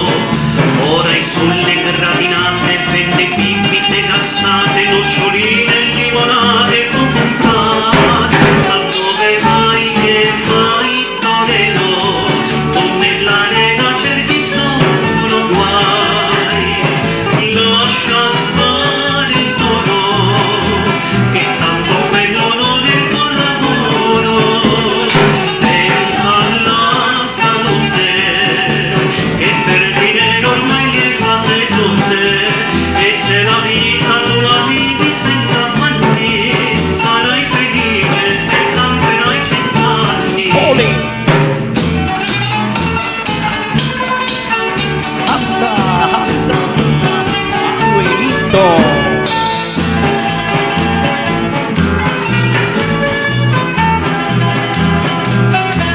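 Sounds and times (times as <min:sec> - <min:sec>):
band playing instrumental: 0:00.0 - 0:55.9
bass line: 0:00.0 - 0:55.9
guitars: 0:00.0 - 0:55.9
steady drum beat: 0:00.0 - 0:55.9.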